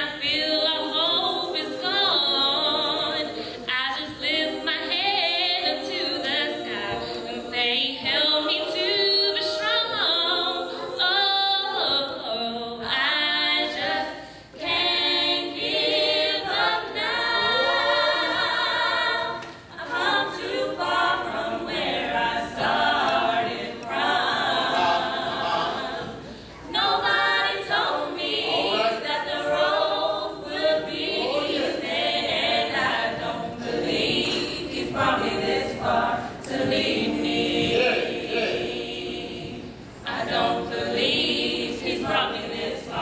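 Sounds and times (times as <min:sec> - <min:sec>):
female vocal group singing gospel: 0:00.0 - 0:43.0.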